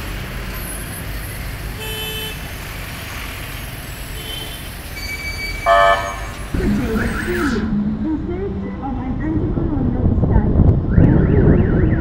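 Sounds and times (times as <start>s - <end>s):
city traffic rumbling: 0.0s - 12.0s
electronic alarm warbling: 5.0s - 7.8s.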